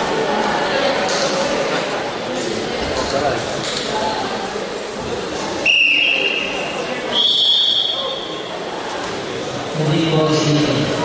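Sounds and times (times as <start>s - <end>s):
sports hall crowd noise: 0.0s - 11.0s
referee's whistle blast: 5.7s - 8.4s.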